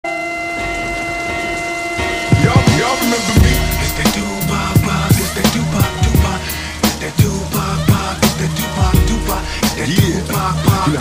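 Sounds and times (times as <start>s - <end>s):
held synth notes: 0.0s - 11.0s
rain sound effect: 0.0s - 11.0s
low rumble: 0.6s - 10.8s.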